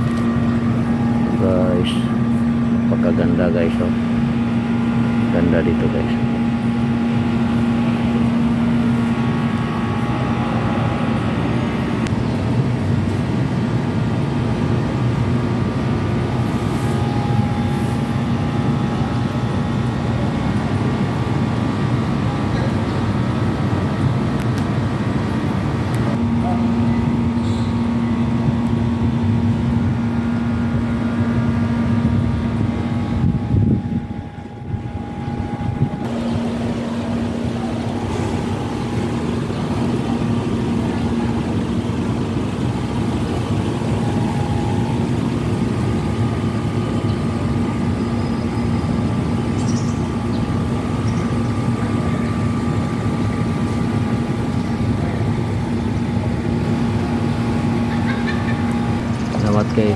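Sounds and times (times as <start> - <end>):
steady machine hum: 0.0 - 59.9
wind rumble on microphone: 28.2 - 36.6.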